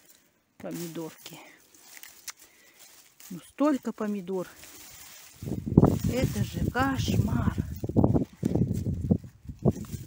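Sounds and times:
leaves rustling: 0.0s - 10.0s.

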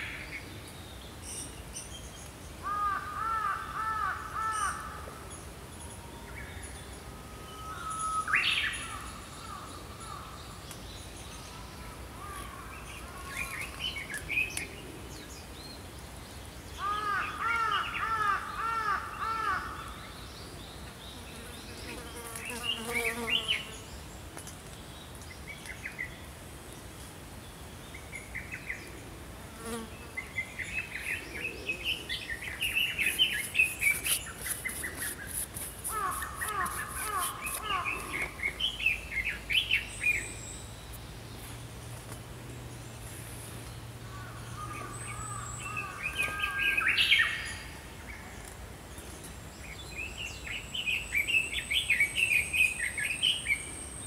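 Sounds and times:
small songbirds singing: 7.8s - 26.8s, 29.6s - 41.7s, 42.8s - 54.0s.

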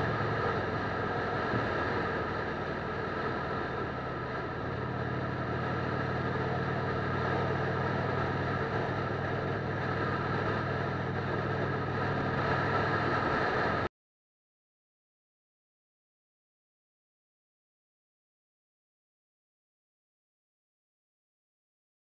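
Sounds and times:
motorcycle engine cruising: 0.0s - 13.9s
road noise: 0.0s - 13.9s
rushing wind: 0.0s - 13.9s.

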